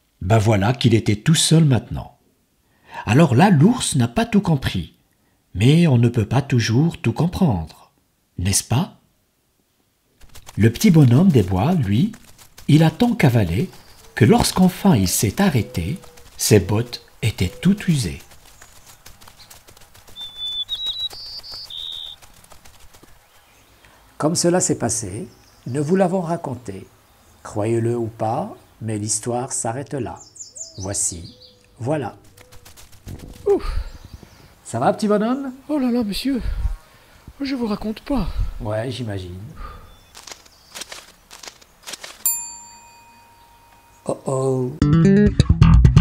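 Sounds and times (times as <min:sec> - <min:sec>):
struck bell ringing: 0:42.2 - 0:44.6.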